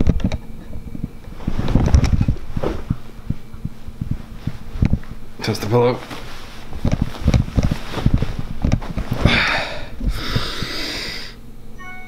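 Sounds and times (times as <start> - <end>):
pillow and bedding rustling: 0.9 - 10.3
person breathing out loudly: 9.2 - 11.4.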